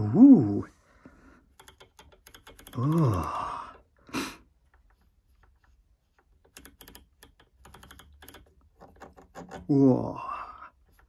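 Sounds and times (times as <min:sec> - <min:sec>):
rotary knob clicking: 0:01.5 - 0:03.4, 0:04.7 - 0:09.7.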